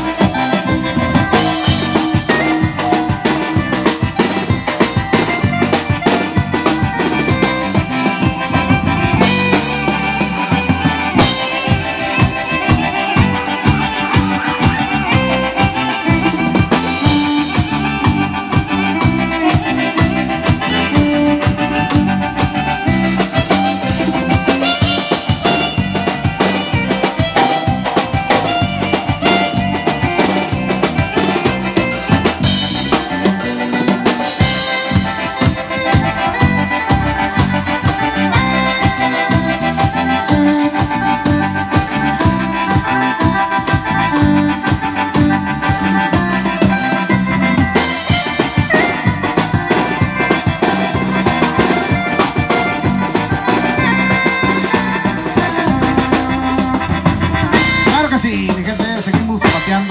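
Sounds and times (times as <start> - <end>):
organ-like keyboard lead: 0.0 - 59.9
steady drum beat: 0.0 - 59.9.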